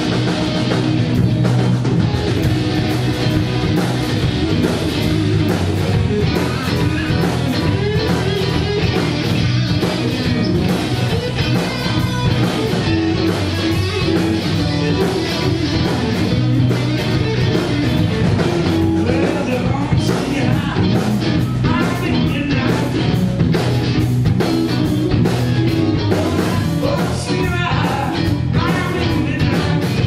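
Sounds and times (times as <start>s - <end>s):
bass guitar: 0.0s - 30.0s
drum kit steady beat: 0.0s - 30.0s
electric guitars: 0.0s - 30.0s.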